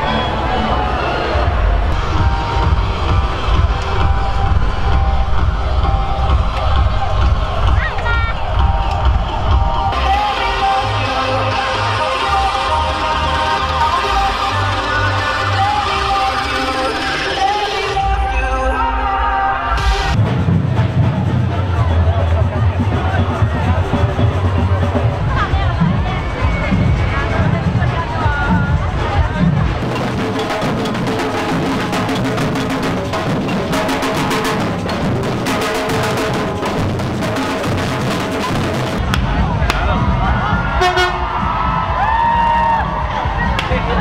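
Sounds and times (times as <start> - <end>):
crowd noise: 0.0 - 44.0
music with heavy bass beat: 1.4 - 18.7, 19.7 - 44.0
drum band beating large drums: 20.1 - 44.0.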